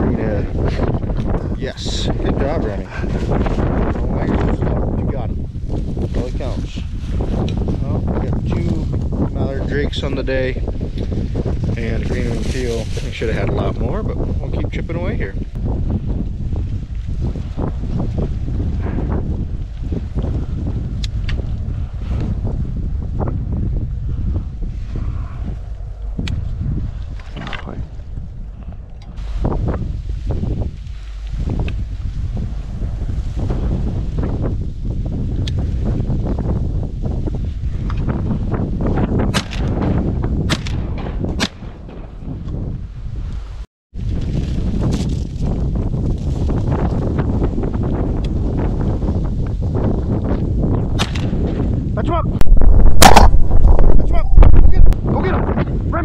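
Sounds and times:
wind buffeting microphone: 0.0s - 56.0s
sharp knocks and cracks: 39.3s - 42.6s, 51.0s - 51.5s.

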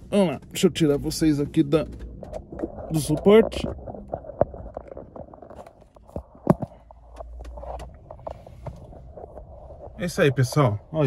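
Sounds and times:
rubbing against microphone: 0.4s - 11.0s.

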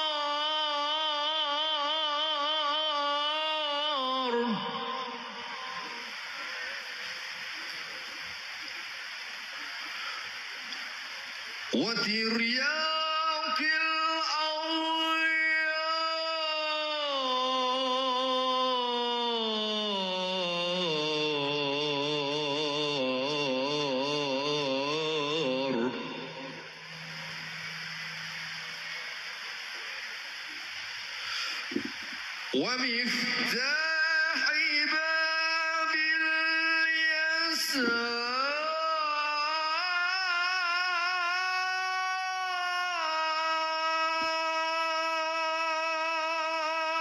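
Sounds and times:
man singing into a microphone: 0.0s - 6.7s, 11.7s - 27.1s, 32.5s - 47.0s
man chanting: 0.0s - 6.9s, 11.7s - 29.0s, 31.6s - 47.0s.

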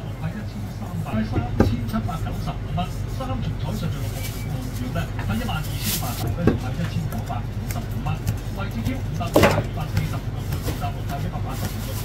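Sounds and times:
person talking: 0.0s - 12.0s
steady low hum: 0.0s - 12.0s.

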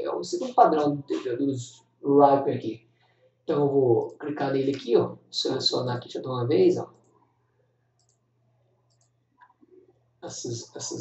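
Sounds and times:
faint computer mouse clicks: 8.0s - 8.2s, 8.9s - 9.5s.

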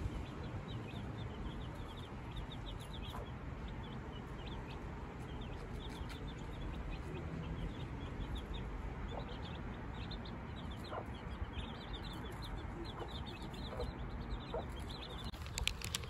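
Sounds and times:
chicks peeping: 0.0s - 16.0s
hen clucking: 2.6s - 3.8s, 10.6s - 16.0s
sharp clicks: 15.3s - 16.0s.

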